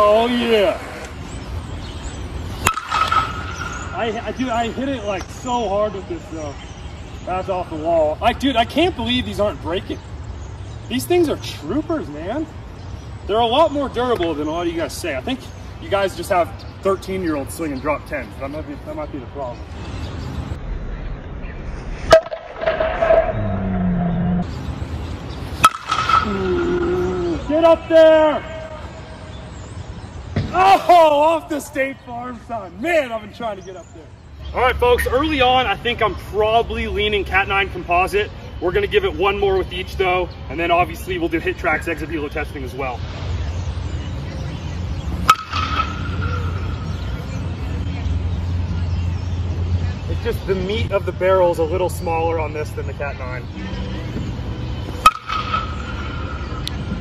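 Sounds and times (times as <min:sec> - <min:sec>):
bat cracking on ball: 0:02.6 - 0:03.9, 0:22.1 - 0:23.4, 0:25.6 - 0:26.8, 0:45.2 - 0:46.8, 0:55.0 - 0:57.0
low rumble: 0:20.5 - 0:24.6.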